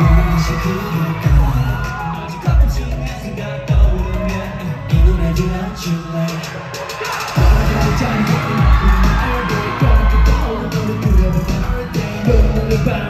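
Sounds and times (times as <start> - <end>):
dance track over sound system: 0.0 - 13.0
fans cheering and screaming: 0.0 - 13.0
heavy bass beat: 0.0 - 13.0
sung vocals: 0.0 - 13.0.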